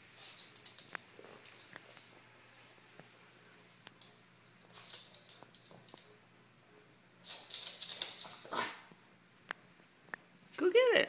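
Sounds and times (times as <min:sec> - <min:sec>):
dog claws clicking on wood floor: 0:00.2 - 0:02.1, 0:04.0 - 0:06.1, 0:07.2 - 0:08.5.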